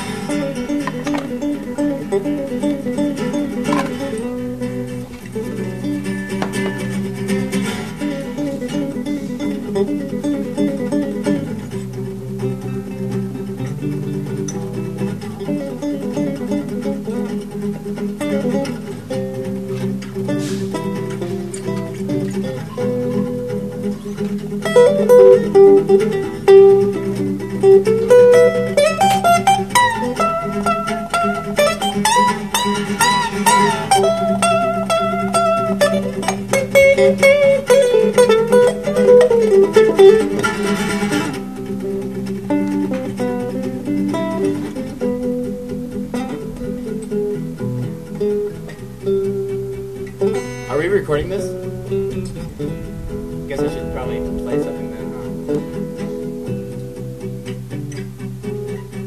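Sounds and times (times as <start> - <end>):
acoustic guitar chords: 0.0 - 59.0
lead acoustic guitar solo: 0.0 - 59.0.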